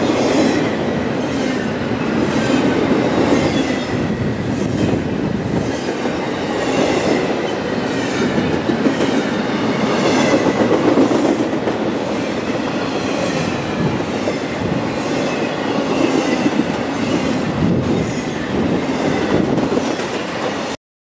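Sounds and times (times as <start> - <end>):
train wheels rumbling on rails: 0.0 - 20.8.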